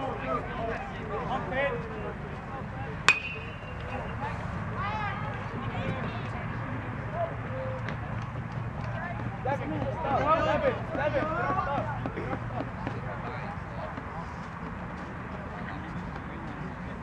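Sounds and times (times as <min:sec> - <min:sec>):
metal bat hitting ball: 0:03.1 - 0:04.1.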